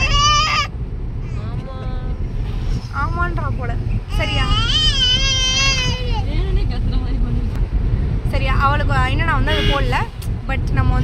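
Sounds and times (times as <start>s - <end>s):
car road and engine noise: 0.0s - 11.0s.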